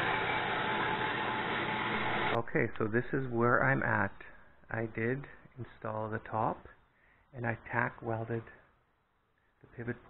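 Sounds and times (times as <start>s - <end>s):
band saw cutting metal: 0.0s - 2.4s
man speaking: 2.4s - 6.8s, 7.4s - 8.7s, 9.7s - 10.0s.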